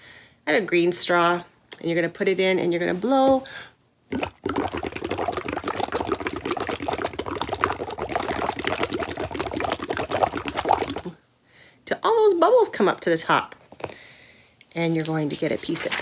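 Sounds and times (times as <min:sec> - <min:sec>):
bubbling through a straw: 0:04.1 - 0:11.2.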